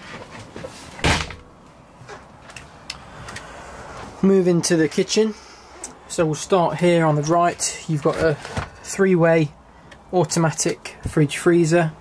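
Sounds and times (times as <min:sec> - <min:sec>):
wooden door thudding shut: 0:01.0 - 0:01.4.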